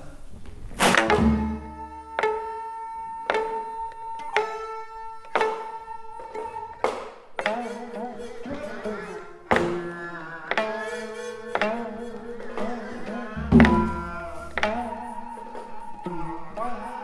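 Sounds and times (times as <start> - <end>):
traditional music with plucked notes: 0.7 - 17.0.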